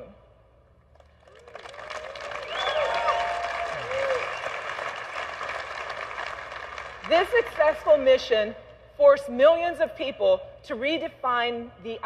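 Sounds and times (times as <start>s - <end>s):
large audience applauding: 1.0s - 7.7s
whoops and cheers: 1.3s - 4.9s.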